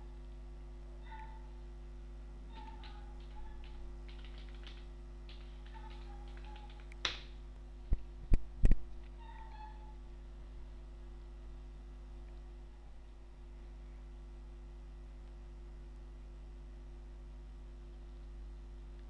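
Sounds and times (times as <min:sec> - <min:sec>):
computer keyboard typing: 0:02.6 - 0:07.2.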